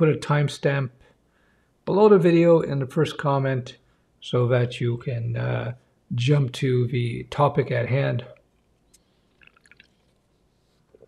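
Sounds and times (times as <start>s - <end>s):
person swallowing a drink: 9.3s - 10.2s.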